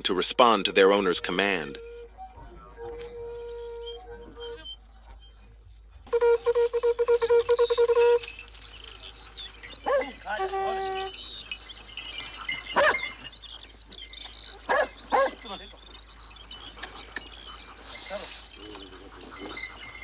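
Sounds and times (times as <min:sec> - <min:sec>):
dogs whining and yelping: 0:00.7 - 0:20.0
sharp calls: 0:06.1 - 0:20.0.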